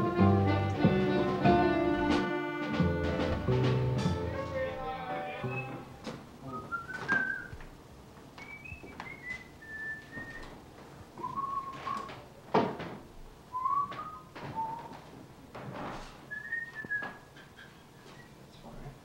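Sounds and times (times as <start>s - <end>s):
person whistling a tune: 5.4s - 7.6s, 8.4s - 10.5s, 11.2s - 12.1s, 13.6s - 15.0s, 16.3s - 17.1s.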